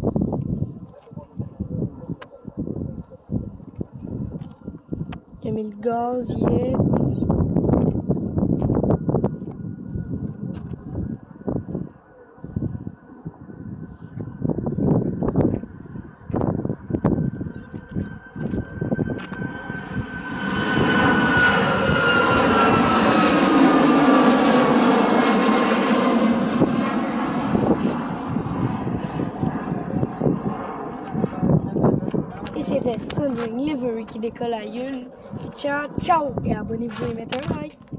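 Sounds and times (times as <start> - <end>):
wind buffeting on microphone: 0.0 - 37.9
high engine whine: 6.3 - 37.9
jet engine roar: 6.5 - 37.9.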